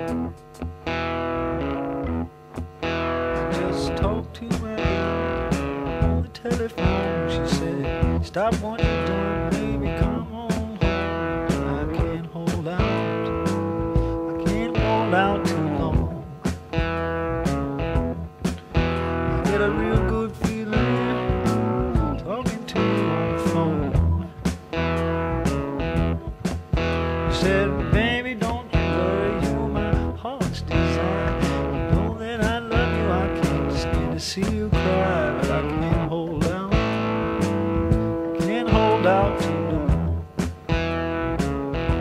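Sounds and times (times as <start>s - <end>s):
bass: 0.0s - 42.0s
drums: 0.0s - 42.0s
overdriven slide guitar: 0.0s - 42.0s.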